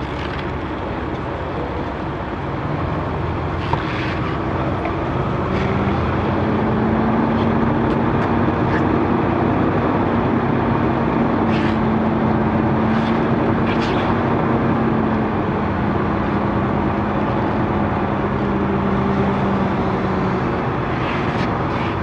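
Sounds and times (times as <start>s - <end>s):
truck diesel engine running: 0.0s - 22.0s.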